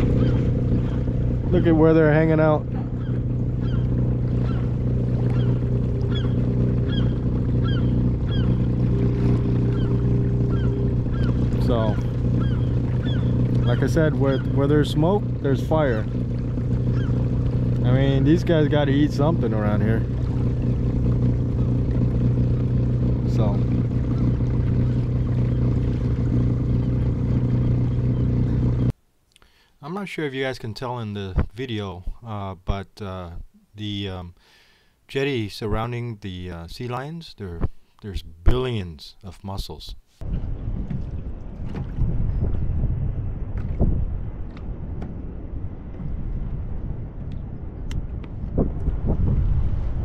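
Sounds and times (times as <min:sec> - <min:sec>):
sea lions barking: 0:00.0 - 0:01.4, 0:02.6 - 0:14.9, 0:16.1 - 0:17.8
low mechanical drone: 0:00.0 - 0:29.0, 0:40.2 - 0:50.0.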